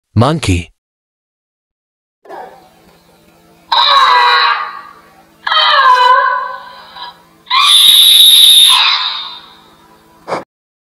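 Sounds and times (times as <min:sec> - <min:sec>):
monkey calls: 0:03.7 - 0:09.6.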